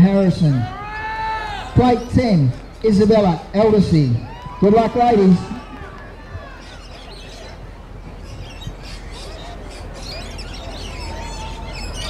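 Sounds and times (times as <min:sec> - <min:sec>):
low outdoor rumble: 0:00.0 - 0:12.0
small birds chirping: 0:06.2 - 0:12.0.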